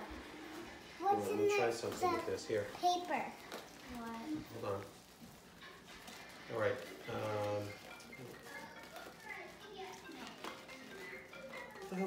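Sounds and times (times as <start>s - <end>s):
quiet background music: 0.0s - 12.0s
faint voices: 6.4s - 12.0s.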